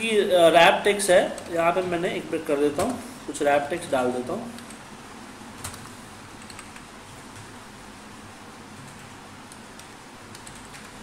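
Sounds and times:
faint background hum: 0.0 - 11.0
computer keyboard keystrokes: 5.6 - 6.8, 8.9 - 11.0.

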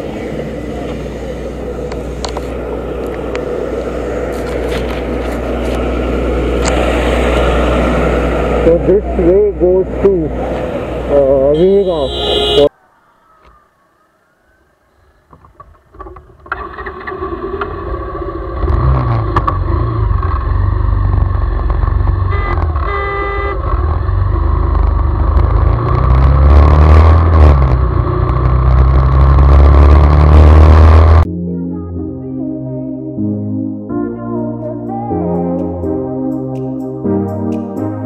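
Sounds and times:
motorcycle running: 0.0 - 12.7, 16.0 - 31.3.

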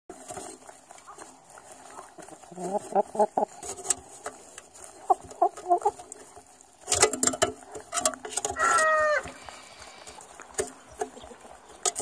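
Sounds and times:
chickens clucking: 0.2 - 12.0
background hiss: 1.0 - 12.0.

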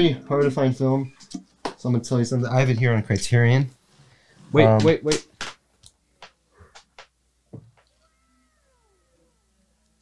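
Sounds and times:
faint pitched tone gliding downward: 7.9 - 10.0.

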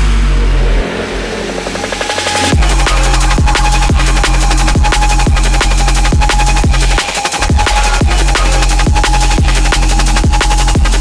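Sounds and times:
held bass note: 0.0 - 10.2
noisy wash: 0.0 - 11.0.

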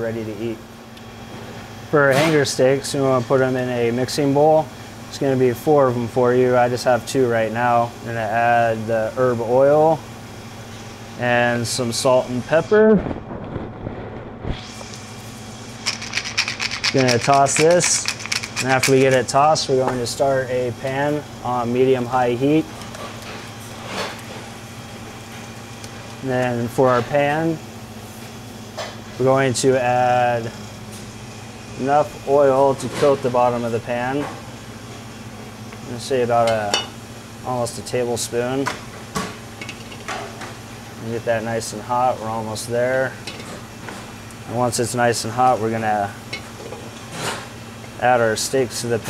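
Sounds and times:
kitchen equipment humming: 0.0 - 49.0.

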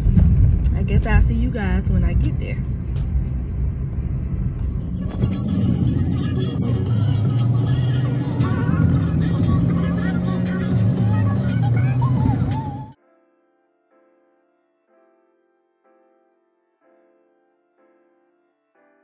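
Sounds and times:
low road rumble: 0.0 - 13.0
song on car stereo: 0.7 - 13.0.

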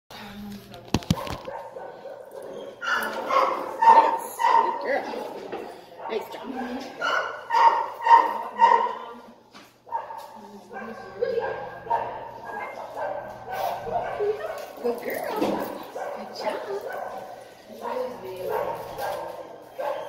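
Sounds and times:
dog barking: 1.1 - 5.2, 6.0 - 9.2, 9.9 - 20.0.

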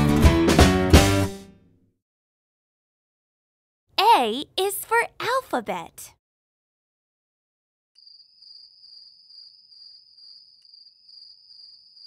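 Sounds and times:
crickets chirping: 8.0 - 12.0.

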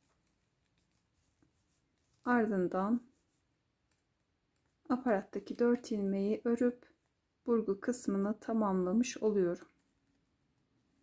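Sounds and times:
woman speaking: 2.3 - 3.1, 4.9 - 9.7.

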